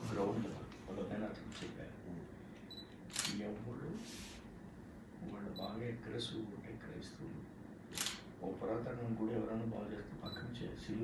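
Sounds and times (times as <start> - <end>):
men talking quietly: 0.0 - 7.6
short hissing sounds: 4.0 - 4.5.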